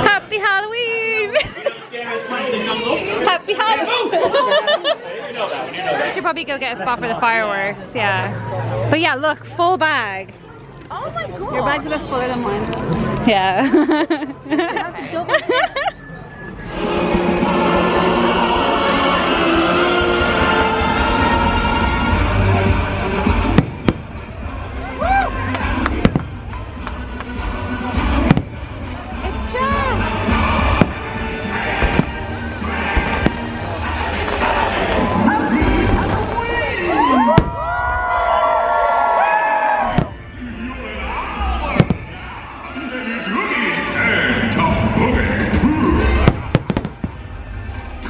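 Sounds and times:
gliding tones: 16.0s - 21.0s
show soundtrack music: 16.2s - 37.4s
firework bangs: 23.2s - 24.7s, 25.6s - 26.8s, 27.9s - 29.4s, 30.1s - 38.3s, 39.8s - 40.5s, 41.4s - 42.6s, 45.4s - 47.6s.

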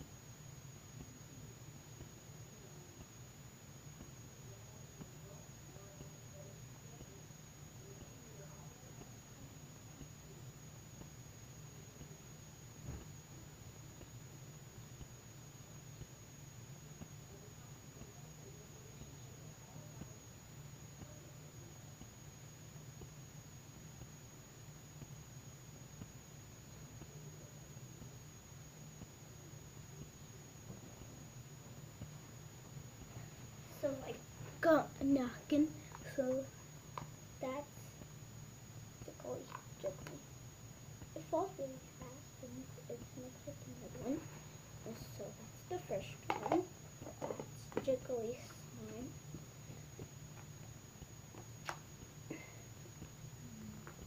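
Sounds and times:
low steady hum: 0.0s - 54.0s
thin high whine: 0.0s - 54.0s.

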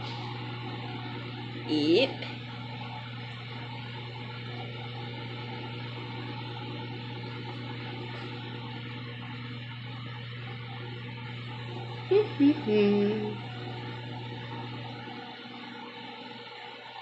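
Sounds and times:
microwave oven humming: 0.0s - 17.0s.

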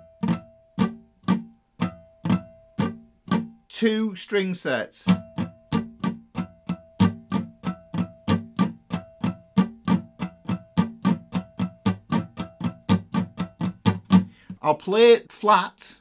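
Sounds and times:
acoustic guitar strumming: 0.0s - 3.8s, 5.0s - 14.6s.

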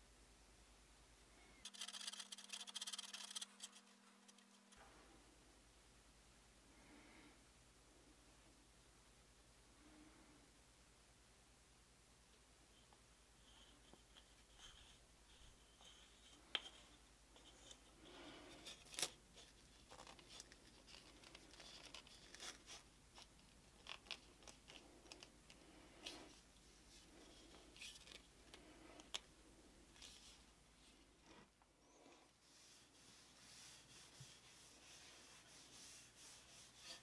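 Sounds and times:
stick stirring glue on paper: 1.6s - 4.8s, 32.4s - 37.0s.

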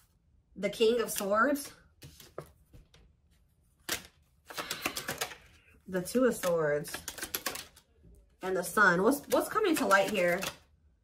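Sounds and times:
cards clicking: 3.8s - 5.5s, 9.2s - 10.6s.

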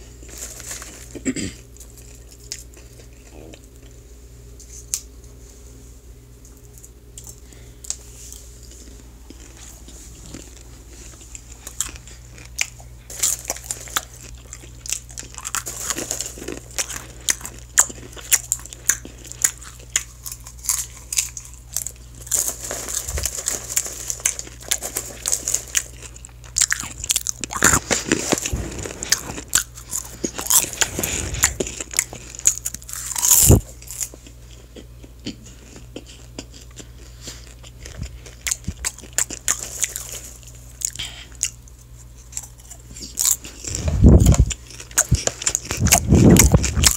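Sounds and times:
popcorn chewing crunches: 0.0s - 4.0s, 6.6s - 46.9s
steady low hum: 0.0s - 46.9s.

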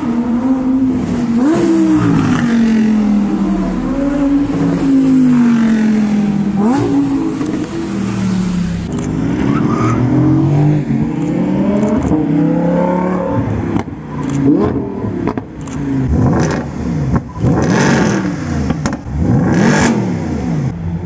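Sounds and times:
supercar engines revving: 0.0s - 21.0s.

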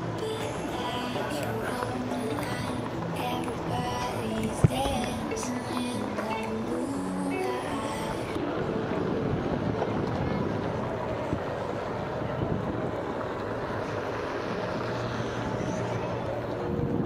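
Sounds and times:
music: 0.0s - 10.7s
board rolling on pavement: 0.0s - 17.0s
wind on microphone: 8.2s - 17.0s.

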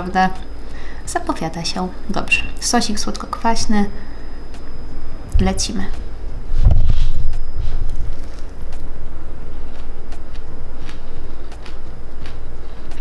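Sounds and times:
steady low rumble: 0.0s - 13.0s
chewing crunches: 7.9s - 13.0s.

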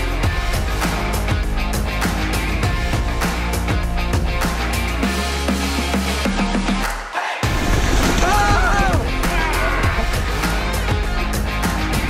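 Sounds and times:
rock music with drums and guitar: 0.0s - 6.9s, 7.5s - 12.0s.

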